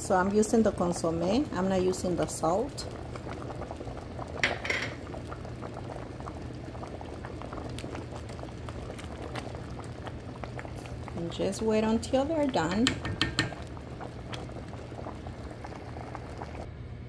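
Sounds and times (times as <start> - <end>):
pot of beans boiling hard: 0.0 - 16.7.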